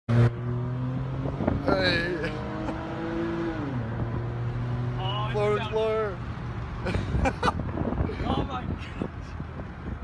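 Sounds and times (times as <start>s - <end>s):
car engine cruising: 0.1s - 10.0s.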